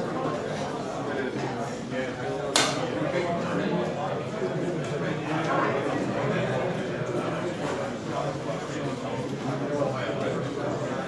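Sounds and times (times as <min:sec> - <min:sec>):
diners chattering: 0:00.0 - 0:11.0.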